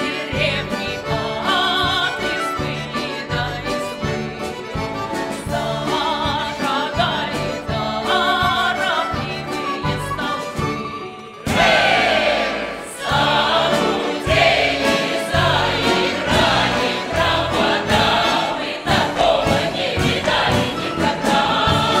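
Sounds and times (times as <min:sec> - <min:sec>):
folk choir singing loudly: 0:00.0 - 0:03.5, 0:05.3 - 0:22.0
folk instrument orchestra: 0:00.0 - 0:22.0.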